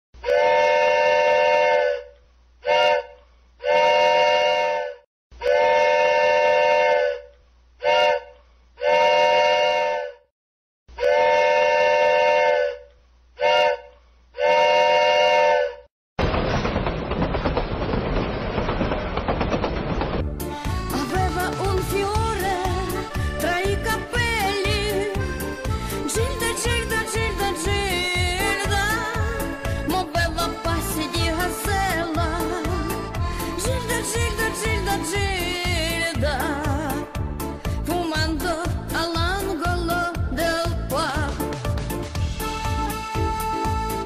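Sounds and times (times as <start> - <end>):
multi-tone signal horn blasts: 0.2 - 10.3, 10.9 - 15.9.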